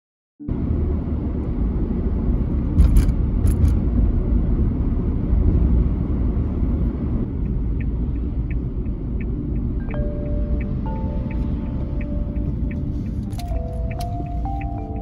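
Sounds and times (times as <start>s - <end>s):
car cabin road and engine rumble: 0.4s - 15.0s
faint regular ticking: 7.3s - 15.0s.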